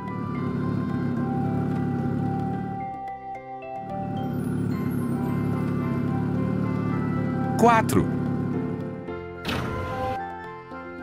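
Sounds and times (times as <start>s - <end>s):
background music of held chords: 0.0s - 11.0s.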